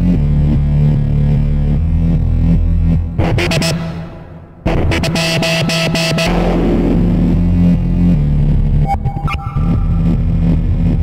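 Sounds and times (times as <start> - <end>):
held low synth bass tone: 0.0 - 11.0
noisy synth wash: 3.1 - 7.6, 8.7 - 11.0
higher synth tones: 8.8 - 10.8.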